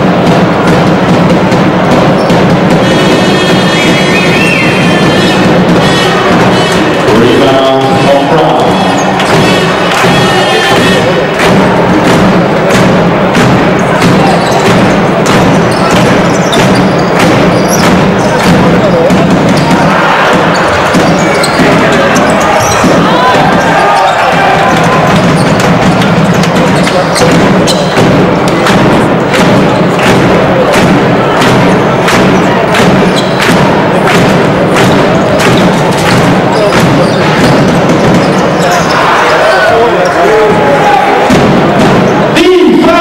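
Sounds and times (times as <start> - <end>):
basketball bouncing on hardwood: 0.0 - 7.0, 9.0 - 10.3, 11.4 - 38.9
arena music: 0.0 - 43.0
voices: 1.5 - 43.0.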